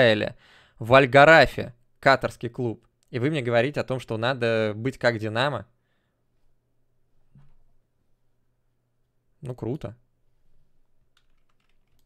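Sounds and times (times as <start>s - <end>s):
computer keyboard typing: 11.2s - 12.0s.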